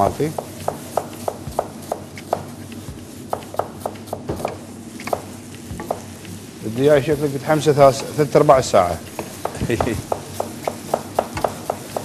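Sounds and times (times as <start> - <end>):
knife knocking on wooden board: 3.3 - 6.1, 9.2 - 12.0.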